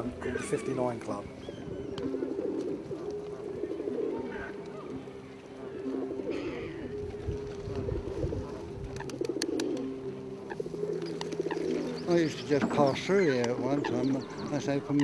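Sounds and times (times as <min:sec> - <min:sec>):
pigeons cooing: 0:00.0 - 0:15.0.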